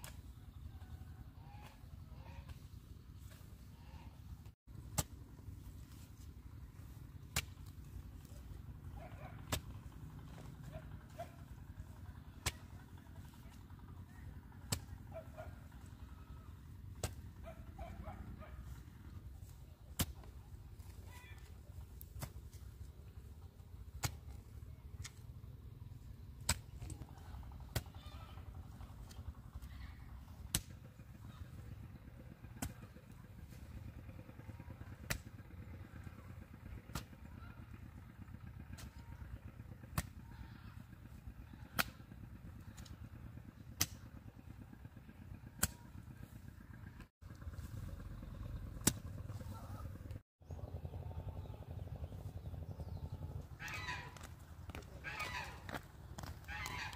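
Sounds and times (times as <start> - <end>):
steady low rumble: 0.0 - 56.9
hoe chopping into soil: 12.4 - 12.8, 17.0 - 17.4, 19.9 - 20.9, 48.8 - 49.1.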